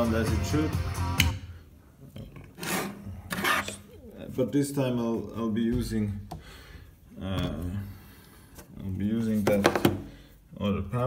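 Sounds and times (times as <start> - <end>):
music through speakers: 0.0 - 1.4.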